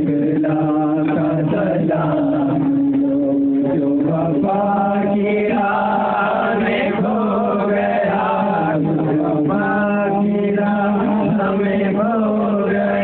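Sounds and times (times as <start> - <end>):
devotional chanting voices: 0.0 - 13.0.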